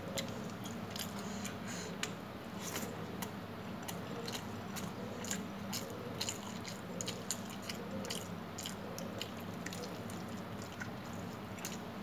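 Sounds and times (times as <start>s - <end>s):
chewing food: 0.0s - 12.0s
steady low hum: 0.0s - 12.0s.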